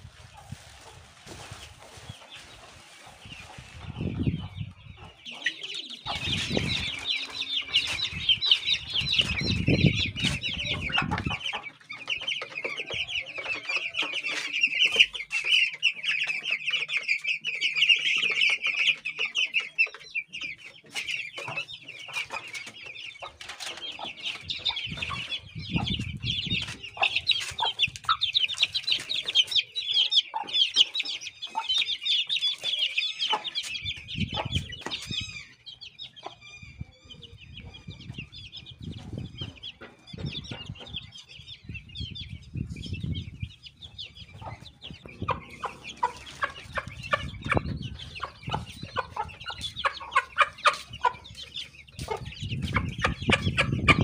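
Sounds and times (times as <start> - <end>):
chicks peeping: 0.0 - 54.0.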